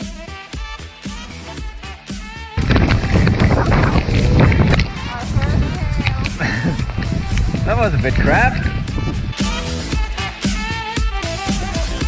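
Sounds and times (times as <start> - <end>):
background music: 0.0 - 12.0
voices: 2.6 - 8.8
loud rushing noise: 2.6 - 9.4.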